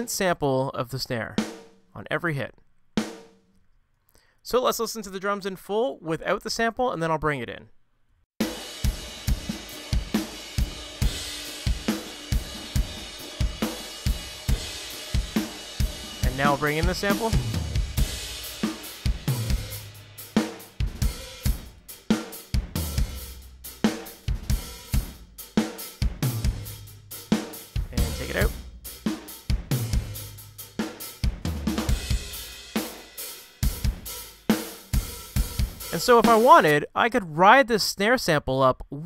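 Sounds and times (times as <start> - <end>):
rock drum kit heavy beat: 1.4 - 1.8, 8.4 - 36.8.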